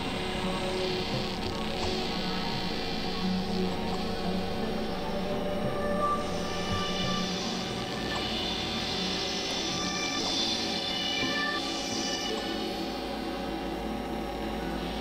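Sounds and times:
layered synthesizer drones: 0.0 - 15.0.

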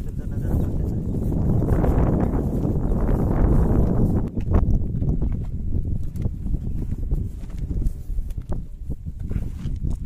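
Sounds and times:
wind buffeting microphone: 0.0 - 10.0
footsteps: 0.1 - 10.0.

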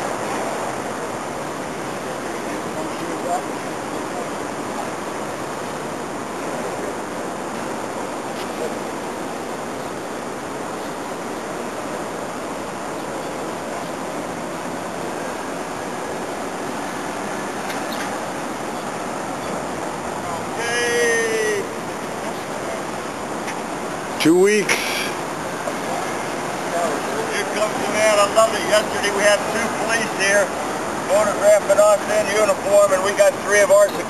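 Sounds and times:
steady rushing noise: 0.0 - 34.0.

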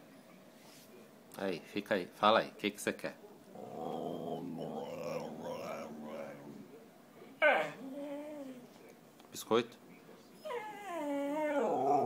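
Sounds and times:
dog wavering vocalization: 7.4 - 8.6, 10.4 - 12.0.

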